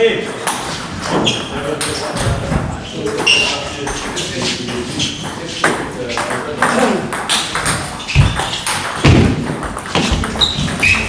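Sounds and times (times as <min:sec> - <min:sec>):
voices talking: 0:01.0 - 0:08.6.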